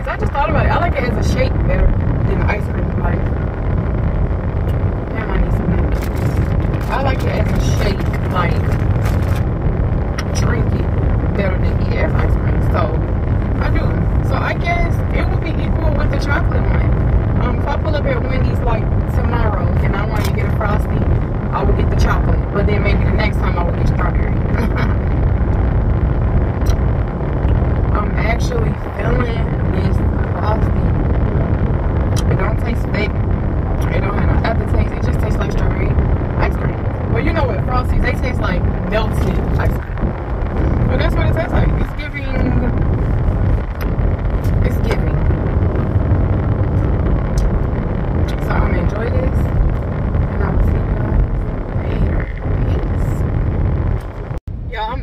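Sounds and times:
person talking: 0.0 - 3.5, 5.0 - 9.4, 10.2 - 25.0, 27.9 - 31.0, 32.1 - 33.2, 33.8 - 40.0, 40.6 - 42.9, 44.4 - 45.3, 48.2 - 49.5, 50.2 - 53.2
car cabin road rumble: 0.0 - 55.0.

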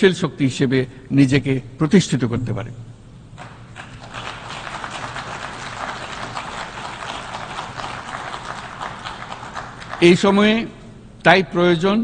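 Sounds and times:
audience applauding: 3.4 - 10.3.

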